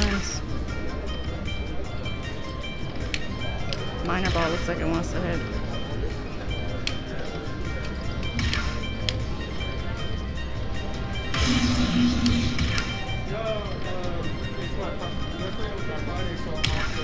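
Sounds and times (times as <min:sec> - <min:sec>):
electronic slot machine music: 0:00.0 - 0:17.0.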